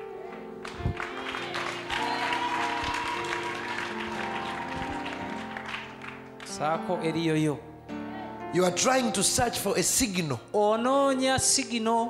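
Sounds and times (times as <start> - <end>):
crowd noise: 0.0 - 6.6.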